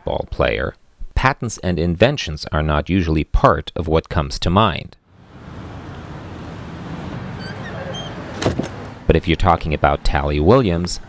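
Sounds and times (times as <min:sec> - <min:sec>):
outdoor background noise: 0:04.7 - 0:11.0
front door opening: 0:05.4 - 0:09.6.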